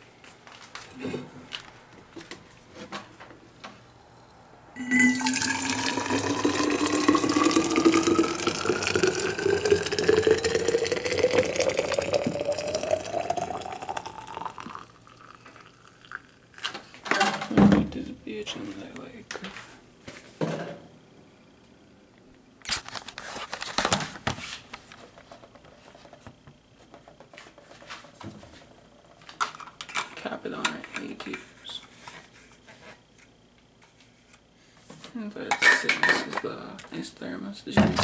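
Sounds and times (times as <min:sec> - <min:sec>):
water pouring into a metal bottle: 0:04.8 - 0:16.3.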